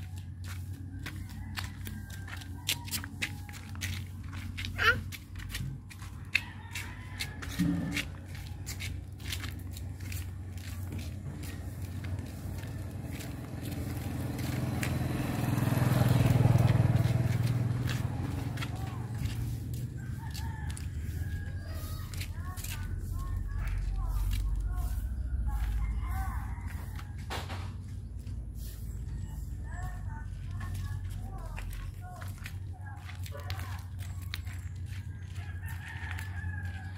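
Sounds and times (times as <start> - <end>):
vehicle engine running: 0.0 - 36.9
rooster crowing: 1.0 - 4.1, 6.3 - 8.7, 14.5 - 23.2, 24.8 - 27.4, 35.0 - 36.9.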